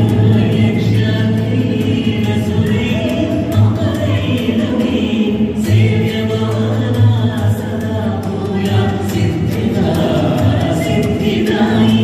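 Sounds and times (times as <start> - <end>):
devotional song by several voices: 0.0 - 12.0.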